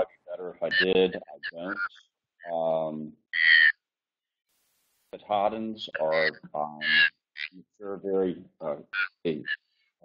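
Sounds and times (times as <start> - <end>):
man's voice on a call: 0.0 - 3.6, 5.2 - 9.6.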